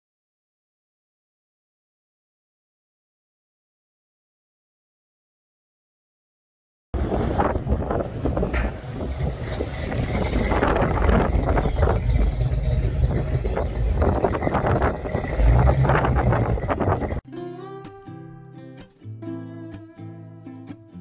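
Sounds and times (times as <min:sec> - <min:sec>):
car engine driving past: 0:07.0 - 0:17.2.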